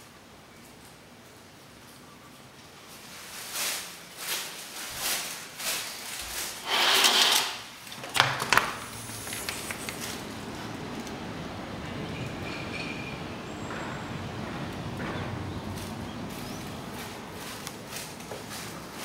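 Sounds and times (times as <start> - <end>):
outdoor city hum: 0.0 - 19.0
sliding door scraping along track: 6.5 - 8.0.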